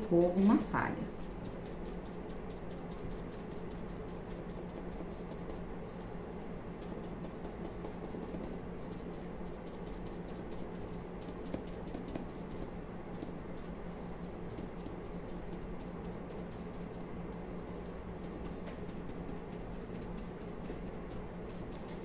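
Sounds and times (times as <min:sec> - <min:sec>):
faint steady hum: 0:00.0 - 0:22.0
foam pouncer tapping paint: 0:01.2 - 0:06.1, 0:06.8 - 0:22.0.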